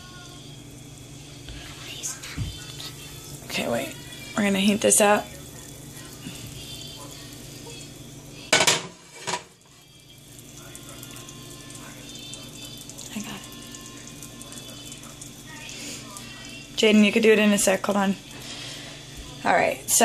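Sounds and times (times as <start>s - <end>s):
butter sizzling in frying pan: 2.5s - 20.0s
pan clanking on burner grate: 8.5s - 9.5s.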